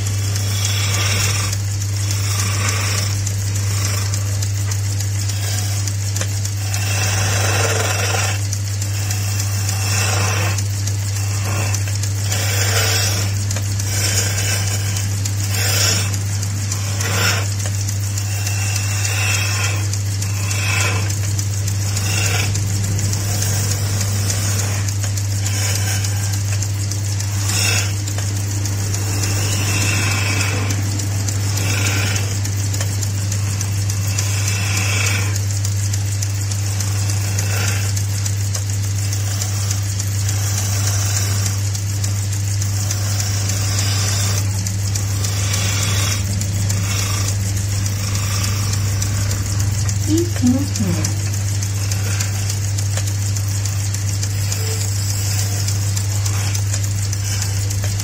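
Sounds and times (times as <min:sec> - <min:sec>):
gouge scraping spinning wood: 0:00.0 - 0:58.0
wood lathe motor hum: 0:00.0 - 0:58.0.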